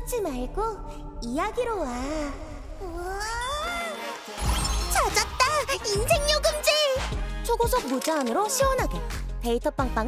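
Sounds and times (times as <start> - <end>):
upbeat music with heavy bass: 4.4 - 8.0.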